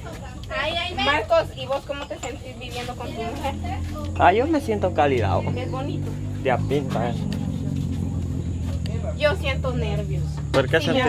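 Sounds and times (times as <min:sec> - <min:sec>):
low motor hum: 0:02.4 - 0:11.0.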